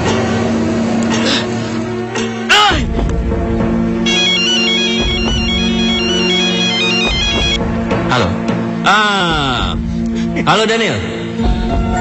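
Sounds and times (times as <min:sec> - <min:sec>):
background music: 0:00.0 - 0:12.0
mobile phone ringtone beeping: 0:04.1 - 0:07.6.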